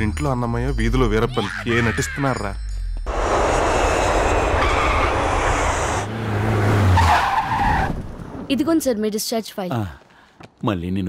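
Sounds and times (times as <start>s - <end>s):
low engine drone: 3.1s - 6.7s
loud rushing noise: 3.1s - 7.0s.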